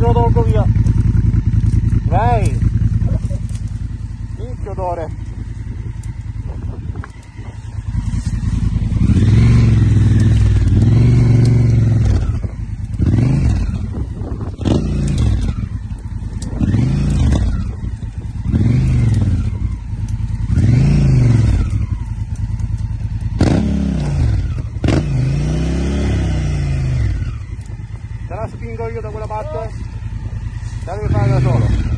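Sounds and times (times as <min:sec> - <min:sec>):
motorcycle engine revving: 0:00.0 - 0:31.9.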